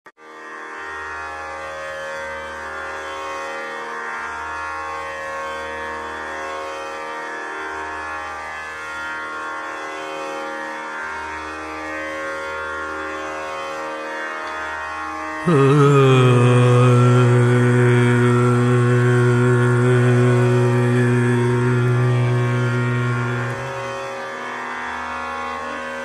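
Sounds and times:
tanpura drone: 0:00.2 - 0:26.0.

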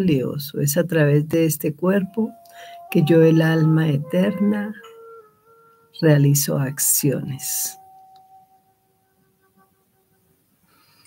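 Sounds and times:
faint soft background music: 0:00.0 - 0:10.3.

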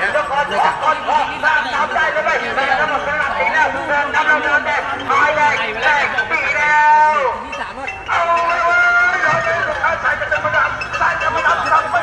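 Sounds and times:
man calling out: 0:00.0 - 0:07.4, 0:08.1 - 0:12.0.

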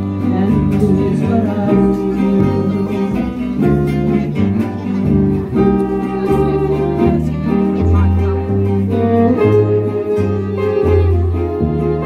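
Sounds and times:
acoustic guitars strumming: 0:00.0 - 0:12.0
bowed fiddle: 0:00.0 - 0:12.0
plucked double bass: 0:00.0 - 0:12.0.

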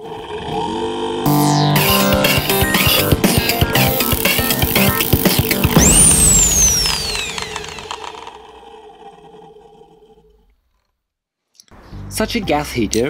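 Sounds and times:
intro music sting: 0:01.3 - 0:08.3
high whistling sweep: 0:05.4 - 0:08.4.

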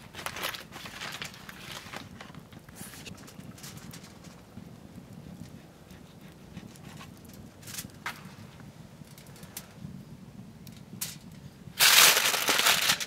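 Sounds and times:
paper rustling: 0:00.0 - 0:03.1.

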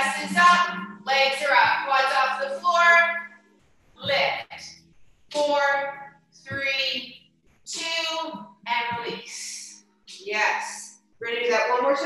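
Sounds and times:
faint musical accompaniment: 0:00.0 - 0:12.0.

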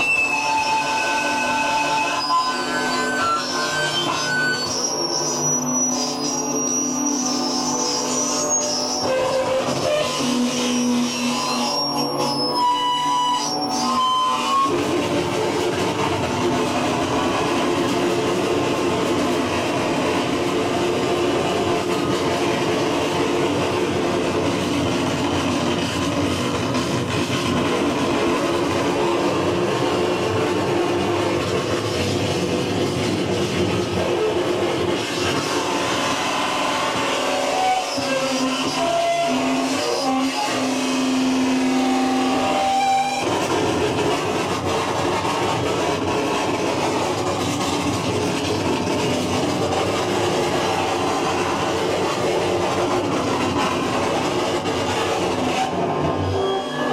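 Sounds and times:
wall of grinding noise: 0:00.0 - 0:56.9.

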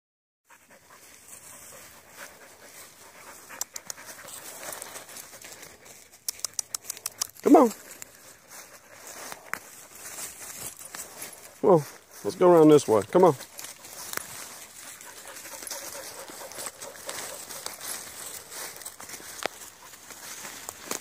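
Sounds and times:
dry leaves rustling and crunching: 0:07.5 - 0:21.0.

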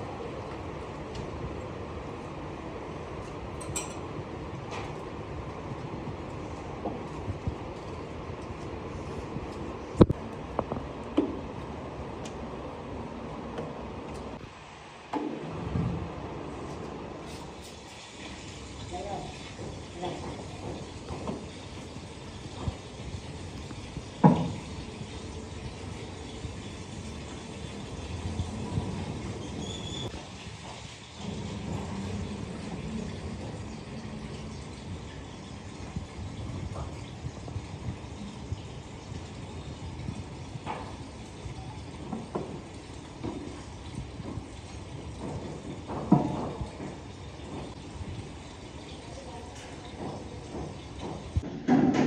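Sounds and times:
steady background noise: 0:00.0 - 0:52.0.

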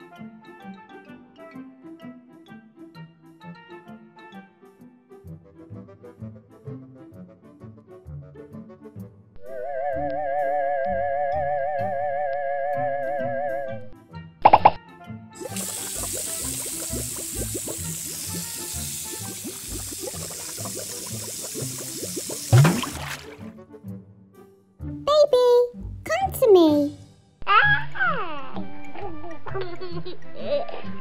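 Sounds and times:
background music: 0:00.0 - 0:31.0
warbling whistle-like tone: 0:09.4 - 0:13.8
water pouring into paddling pool: 0:15.4 - 0:23.5.

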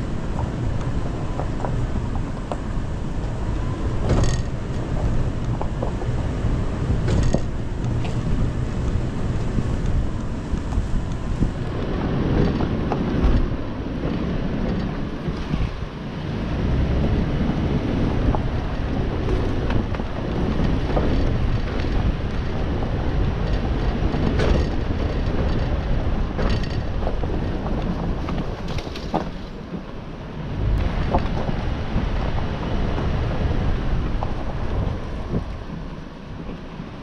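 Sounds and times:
engine rumble: 0:00.0 - 0:37.0
tyres on dirt: 0:00.0 - 0:37.0
wind on microphone: 0:00.0 - 0:37.0
sharp knocks over bumps: 0:00.2 - 0:15.7, 0:19.2 - 0:29.8, 0:30.6 - 0:33.2.

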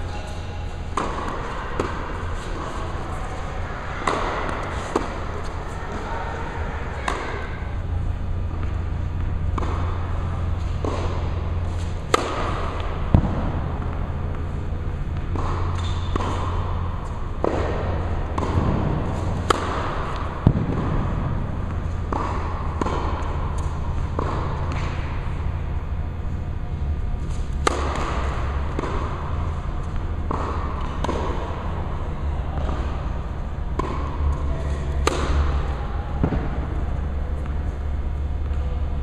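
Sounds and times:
racket hitting tennis ball: 0:00.0 - 0:39.0
steady low hum: 0:00.0 - 0:39.0
tennis ball bouncing: 0:00.1 - 0:39.0.

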